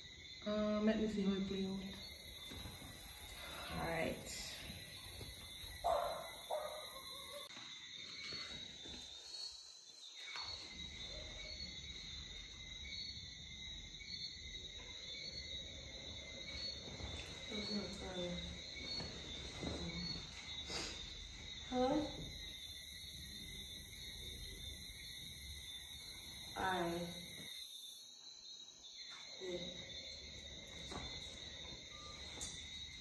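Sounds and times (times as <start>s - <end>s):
insects chirring: 0.0s - 33.0s.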